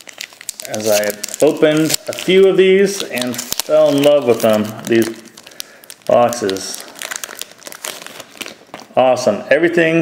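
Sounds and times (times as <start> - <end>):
plastic bag crinkling: 0.0 - 9.0.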